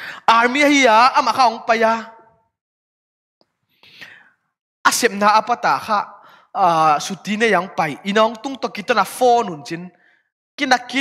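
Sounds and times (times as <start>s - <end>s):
man speaking: 0.3s - 2.2s, 4.9s - 9.9s, 10.6s - 11.0s.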